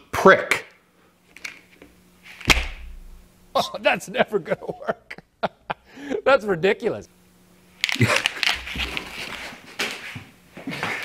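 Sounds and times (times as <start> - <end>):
faint steady hum: 0.0 - 11.0
sharp crack: 2.4 - 3.2.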